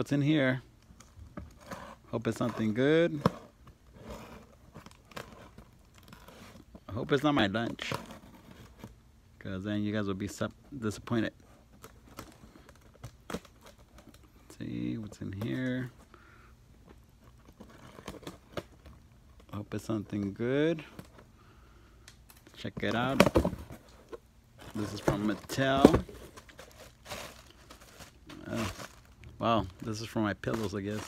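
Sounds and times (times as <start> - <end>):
scratching and crinkling: 0.0 - 9.1, 9.9 - 31.0
blade scratching cardboard box tape: 1.5 - 6.7.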